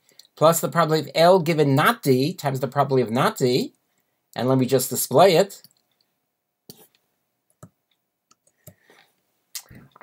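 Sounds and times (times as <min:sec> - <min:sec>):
computer keys and mouse clicks: 0:06.7 - 0:08.8.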